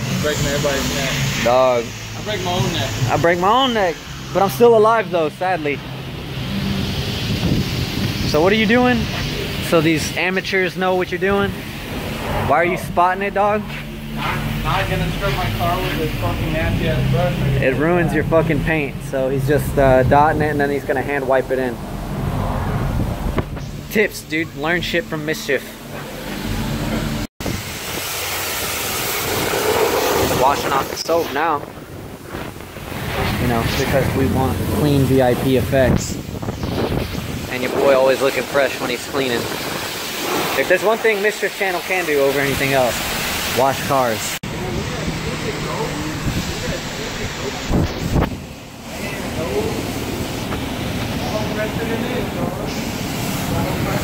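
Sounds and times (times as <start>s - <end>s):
pressure washer spraying water: 0.0s - 54.0s
wind buffeting microphone: 7.2s - 8.4s, 31.5s - 38.0s
low wind thumps: 21.8s - 24.0s.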